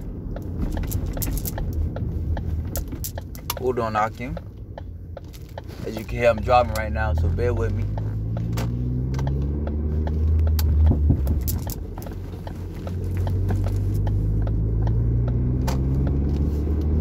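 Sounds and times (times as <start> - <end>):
car engine and road rumble: 0.0 - 17.0.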